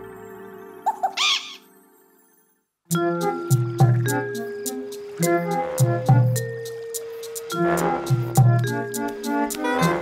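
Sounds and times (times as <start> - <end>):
cartoon theme tune: 0.0 - 4.6, 7.5 - 10.0
soft background music: 0.0 - 10.0
cartoon bird squawk: 0.8 - 1.7.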